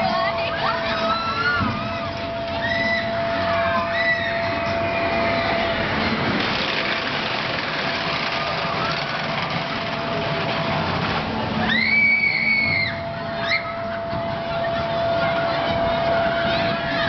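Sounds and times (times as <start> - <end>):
amusement ride noise: 0.0 - 17.0.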